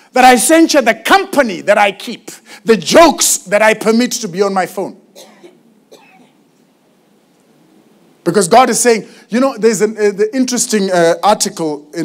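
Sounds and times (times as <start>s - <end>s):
person coughing faintly: 5.2s - 6.4s.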